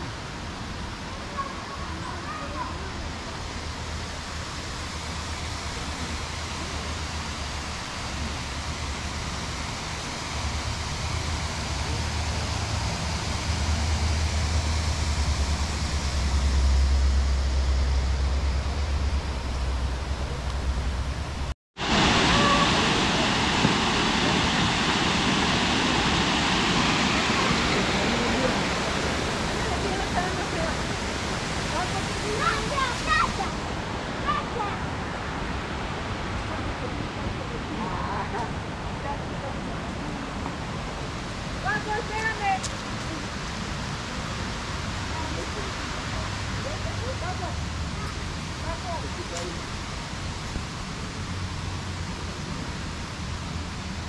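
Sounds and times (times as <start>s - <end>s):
flowing river water: 0.0s - 54.0s.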